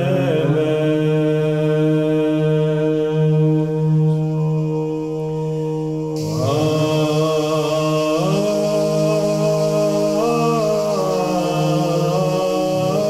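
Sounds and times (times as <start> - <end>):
low voice chanting: 0.0 - 13.0.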